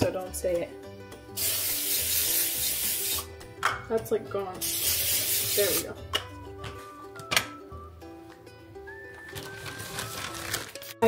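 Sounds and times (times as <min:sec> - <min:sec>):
cooking spray hissing: 0:01.3 - 0:03.3, 0:04.6 - 0:05.9.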